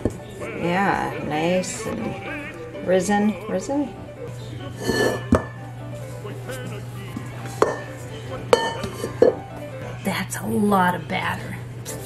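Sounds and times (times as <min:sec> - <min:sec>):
metal bowl knocking on counter: 0:07.6 - 0:07.8, 0:08.6 - 0:09.4.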